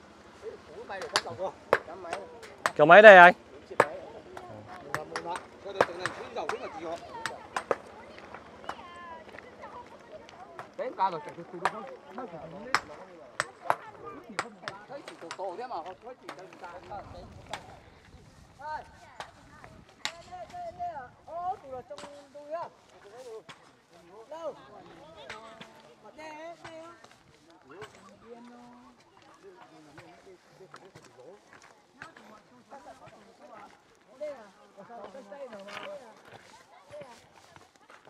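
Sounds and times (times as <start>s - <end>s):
quiet talking: 0.0s - 38.0s.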